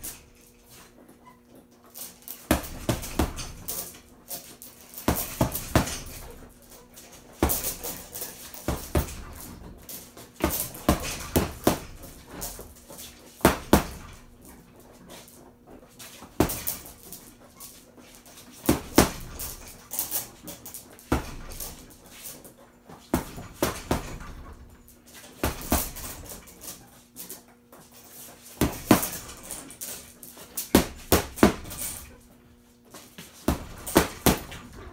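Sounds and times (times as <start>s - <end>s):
boxing gloves punching heavy bag: 2.2s - 14.6s, 16.0s - 17.5s, 18.2s - 22.1s, 23.1s - 24.7s, 25.4s - 26.8s, 28.5s - 32.2s, 33.4s - 34.9s
punches on heavy bag: 2.5s - 3.8s, 13.4s - 14.2s, 16.4s - 16.9s, 28.6s - 29.5s, 33.5s - 34.7s.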